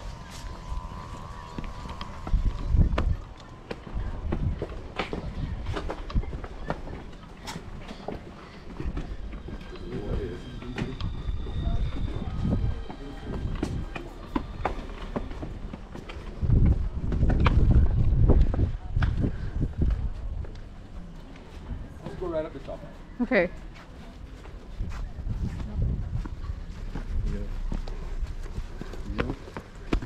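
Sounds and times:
wind rumble on microphone: 0.0s - 6.5s, 11.0s - 14.6s, 15.4s - 20.8s, 24.8s - 30.0s
footsteps on stone steps: 0.0s - 30.0s.

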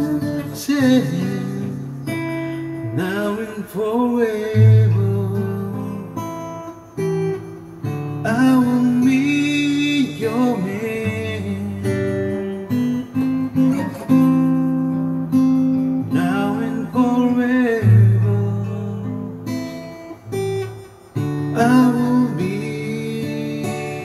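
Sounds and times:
man singing long notes: 0.0s - 6.3s, 21.5s - 24.0s
acoustic guitar chords: 0.0s - 24.0s.

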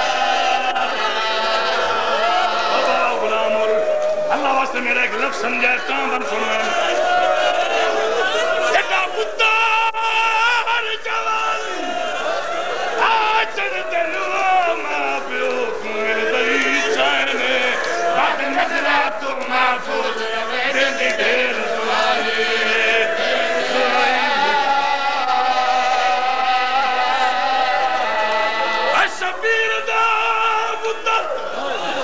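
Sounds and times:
man singing recitation: 2.7s - 6.9s, 13.0s - 21.6s.

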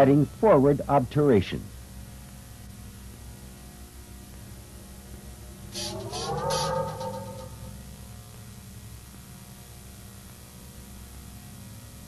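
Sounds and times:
bursts of hiss: 5.7s - 7.4s
electronic tone gliding upward: 5.7s - 7.9s.

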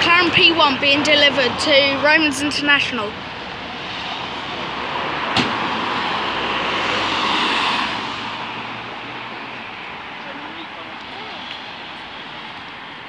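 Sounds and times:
road traffic passing: 0.0s - 13.0s.

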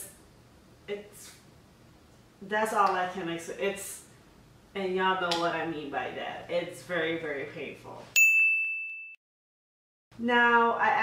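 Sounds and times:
bright ding: 8.2s - 9.2s.

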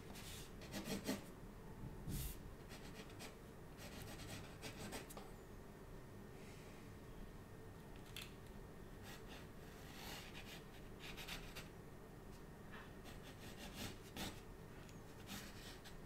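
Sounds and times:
pencil scratching on paper: 0.1s - 1.3s, 2.7s - 5.1s, 9.0s - 11.7s, 13.0s - 14.4s, 15.1s - 16.0s.

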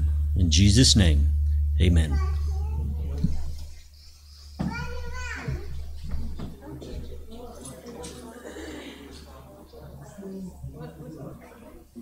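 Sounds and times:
child calling out: 4.6s - 5.7s.

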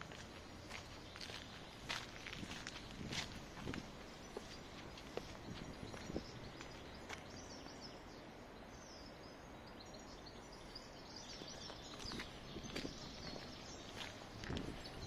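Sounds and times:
footsteps: 0.0s - 7.3s, 11.4s - 14.8s
city background hum: 0.0s - 15.0s
small birds chirping: 0.0s - 15.0s.

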